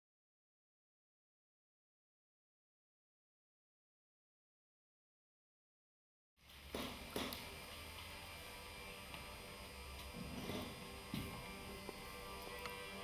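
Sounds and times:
steady low hum: 6.4 - 13.0.

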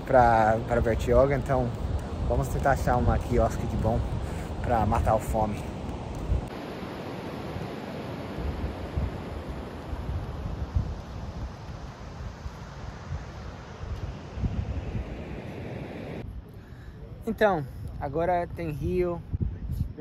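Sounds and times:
ocean surf: 0.0 - 16.2
wind gusting against microphone: 0.0 - 20.0.

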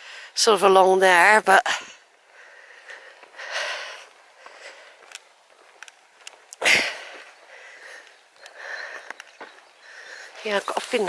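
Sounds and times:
person breathing close to microphone: 1.8 - 5.2, 6.6 - 9.2, 9.8 - 10.4
faint clicks: 5.0 - 6.7, 7.9 - 9.4.

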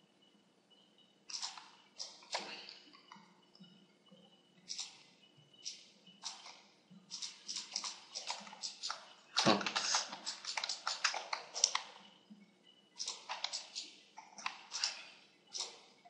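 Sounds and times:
keyboard and mouse clicking: 1.3 - 3.2, 4.7 - 5.0, 5.6 - 12.0, 13.0 - 15.9.

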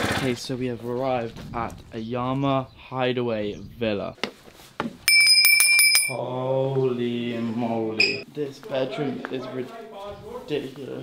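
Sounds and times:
high bell-like ringing: 5.1 - 6.2, 8.0 - 8.2.

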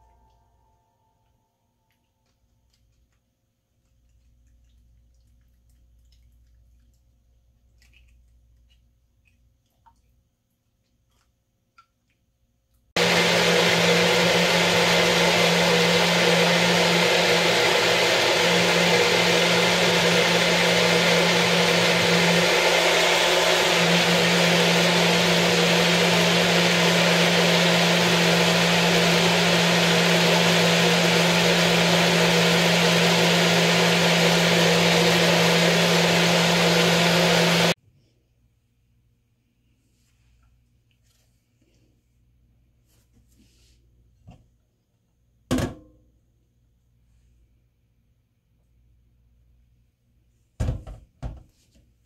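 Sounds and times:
blender motor running: 13.0 - 37.8.

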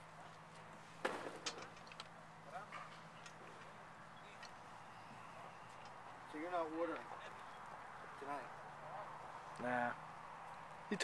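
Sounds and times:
distant voices: 0.0 - 11.0
rattle of small knocks: 1.0 - 3.7.

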